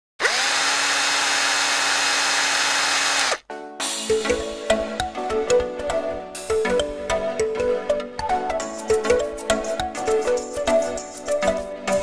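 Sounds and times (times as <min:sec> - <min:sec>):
electric hair clipper whirring: 0:00.2 - 0:03.4
music: 0:03.5 - 0:12.0.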